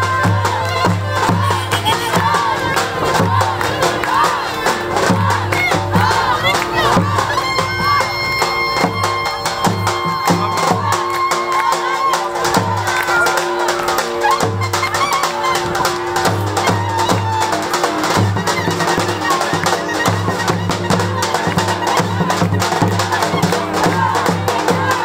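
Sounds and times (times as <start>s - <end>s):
loud dance music: 0.0s - 17.5s
crowd shouting and cheering: 0.0s - 25.0s.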